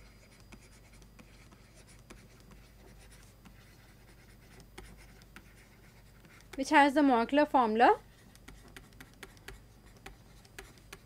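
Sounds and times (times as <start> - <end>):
stylus writing on tablet: 0.0 - 11.0.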